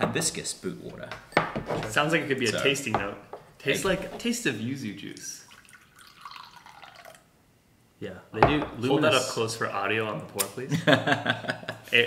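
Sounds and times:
liquid trickling into cup: 5.4s - 7.3s.

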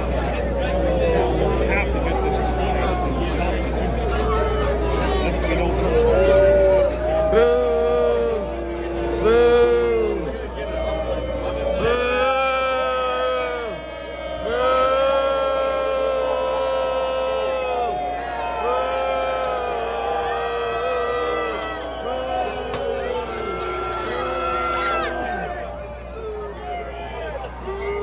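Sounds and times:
stadium crowd noise: 0.0s - 28.0s
person singing slow melody: 6.0s - 10.3s.

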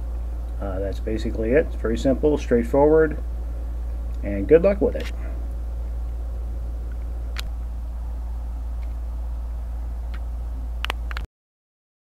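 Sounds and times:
low background rumble: 0.0s - 11.3s.

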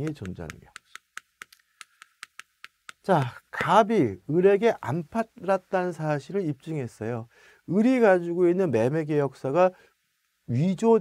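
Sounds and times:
chalk tapping on chalkboard: 0.0s - 3.1s.

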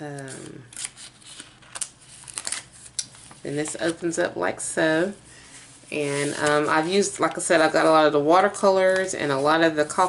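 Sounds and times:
paper pages rustling: 0.4s - 4.0s.

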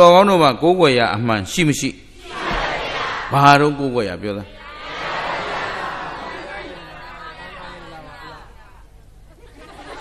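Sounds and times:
audience chatter: 4.4s - 10.0s.

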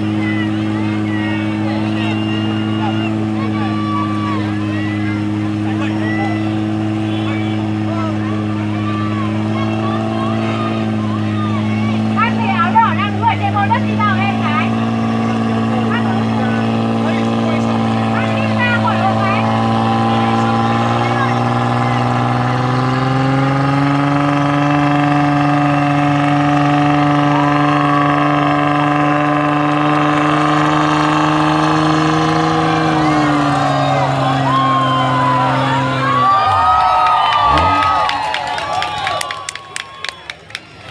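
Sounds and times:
crowd voices and shouts: 0.0s - 40.9s
off-road engine at high revs: 0.0s - 40.9s.

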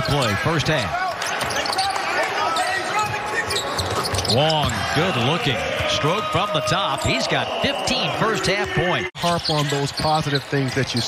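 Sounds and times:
players calling out: 0.0s - 11.0s.

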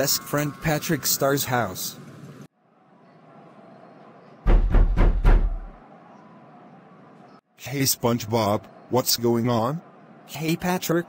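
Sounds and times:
knocks on a door: 4.5s - 5.7s.

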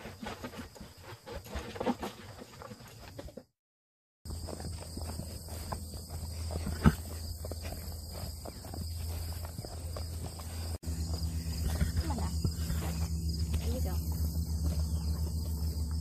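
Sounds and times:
insects chirring in grass: 4.3s - 16.0s
low hum: 4.8s - 16.0s.

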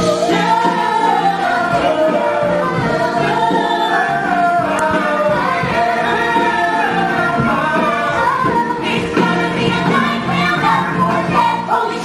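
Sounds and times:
musical accompaniment: 0.0s - 12.0s
voices singing together: 0.0s - 12.0s.

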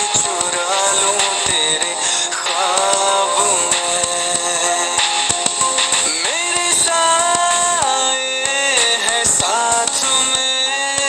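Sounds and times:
musical backing: 0.0s - 11.0s
person singing slow melody: 0.0s - 11.0s.

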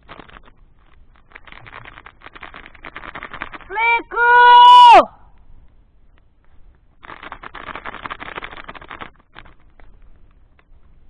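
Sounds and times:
plastic snack packet crinkling: 0.0s - 3.7s, 7.0s - 10.0s
scattered crackles: 0.0s - 11.0s.

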